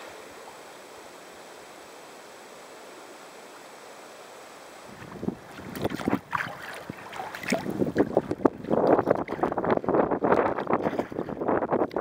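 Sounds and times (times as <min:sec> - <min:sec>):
river hiss: 0:00.0 - 0:08.9
paddle strokes splashing: 0:04.8 - 0:11.6
wind buffeting microphone: 0:04.9 - 0:12.0.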